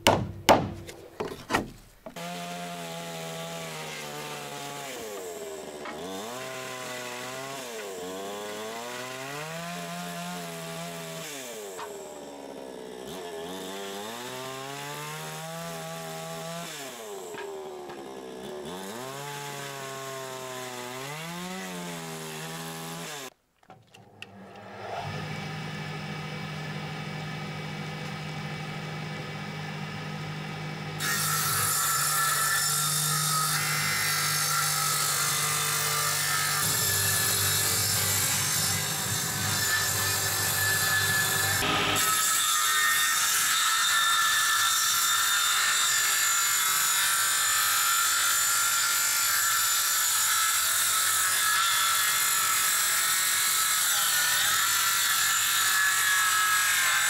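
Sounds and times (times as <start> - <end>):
power saw cutting wood: 1.6 - 23.3, 24.2 - 57.0.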